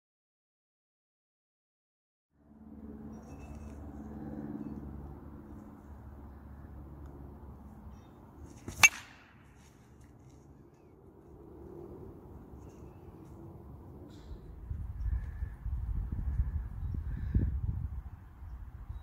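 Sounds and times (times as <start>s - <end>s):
steady low hum: 2.4s - 18.8s
baseball bat hitting ball: 8.5s - 9.8s.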